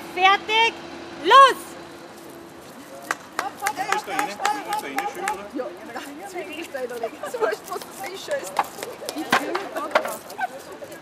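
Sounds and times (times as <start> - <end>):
crowd chatting: 0.0 - 11.0
loud shout: 3.4 - 5.6.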